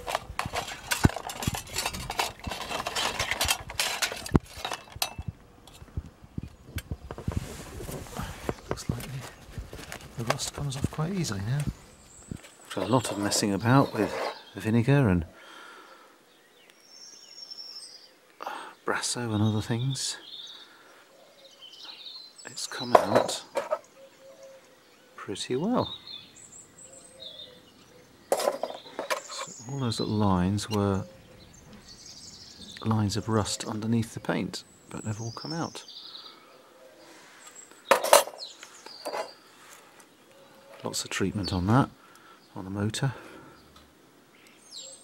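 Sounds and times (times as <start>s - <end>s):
faint bird chirps: 11.0s - 42.7s
person speaking: 12.7s - 15.3s, 22.6s - 23.8s.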